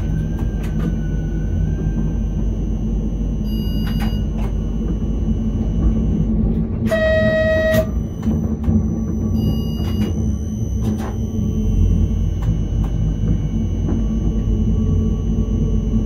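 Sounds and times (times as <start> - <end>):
train wheel clicks: 0.0 - 1.1, 5.7 - 14.4
electric train rumble: 0.0 - 16.0
train horn blast: 6.9 - 8.0.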